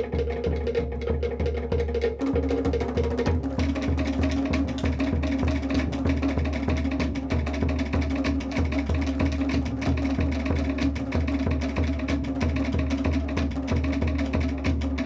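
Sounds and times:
bass drum beat: 0.0s - 15.0s.

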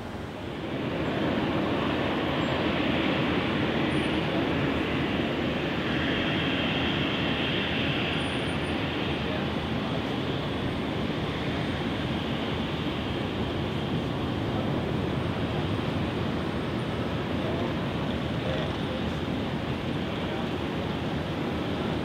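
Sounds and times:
distant jet engines rushing: 0.0s - 22.0s
faint higher engine whine: 0.0s - 22.0s.

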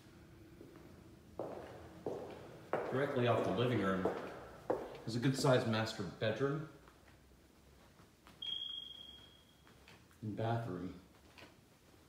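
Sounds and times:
high-pitched beep: 8.4s - 9.6s.

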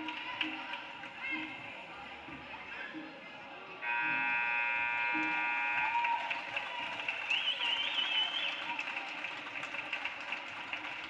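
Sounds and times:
crowd noise in gym: 0.0s - 11.0s
scoreboard horn blast: 3.8s - 6.0s.

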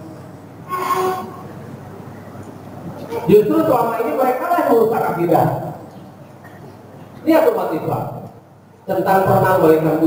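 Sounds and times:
low hall room rumble: 0.0s - 10.0s.

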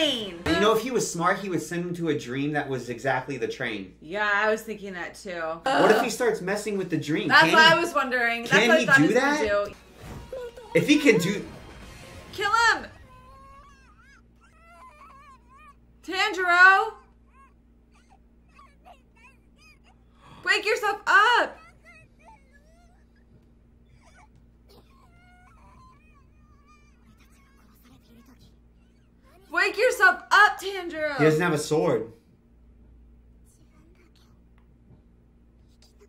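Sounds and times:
low steady hum: 0.0s - 36.0s
dog whimpering: 13.1s - 15.8s, 21.5s - 29.5s.

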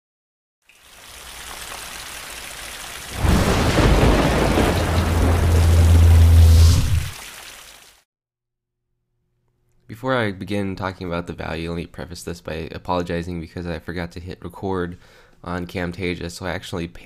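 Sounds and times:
rain-like hiss: 0.7s - 8.0s
deep thunder-like rumble: 3.2s - 7.2s
steady low drone: 4.8s - 7.1s.

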